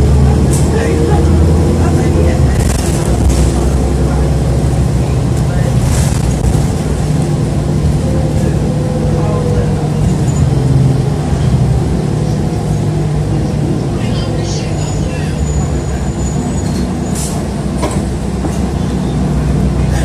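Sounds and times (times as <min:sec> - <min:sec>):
bus engine drone: 0:00.0 - 0:20.0.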